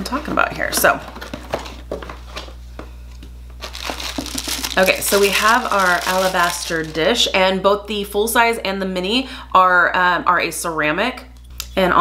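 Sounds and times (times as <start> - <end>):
packaging rustling and crinkling: 3.6 - 7.3.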